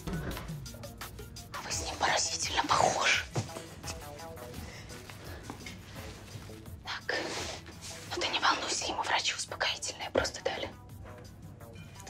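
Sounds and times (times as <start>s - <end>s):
quiet background music: 0.0s - 12.0s
whispered speech: 1.6s - 3.3s, 8.1s - 10.8s.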